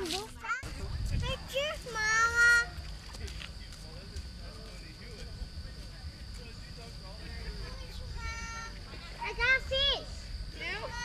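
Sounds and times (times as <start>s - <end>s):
faint distant voices: 0.0s - 11.0s
steady high-pitched tone: 0.0s - 11.0s.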